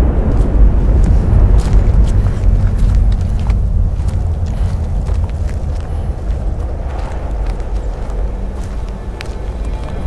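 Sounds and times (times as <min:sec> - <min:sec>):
deep low rumble: 0:00.0 - 0:10.0.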